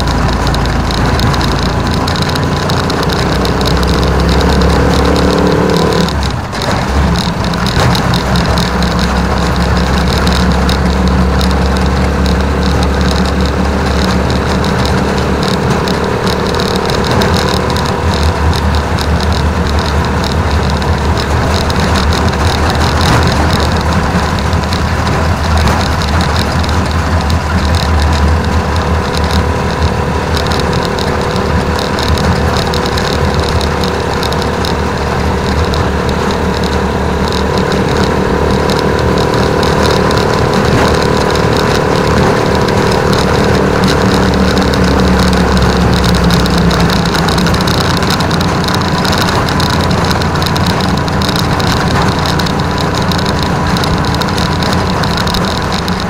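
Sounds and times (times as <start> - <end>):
motorcycle engine running: 0.0 - 56.0
road and wind noise: 0.0 - 56.0.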